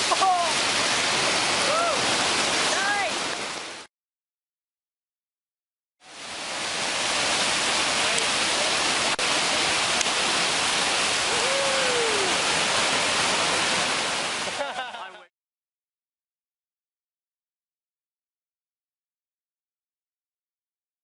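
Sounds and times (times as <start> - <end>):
whitewater rapids roaring: 0.0 - 3.8, 6.1 - 15.2.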